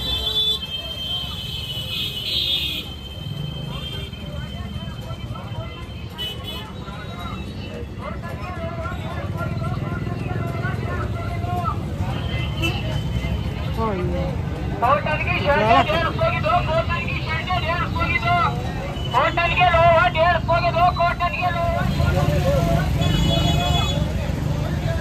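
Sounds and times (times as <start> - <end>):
street market hubbub: 0.0 - 25.0
vendor calling out: 7.9 - 25.0.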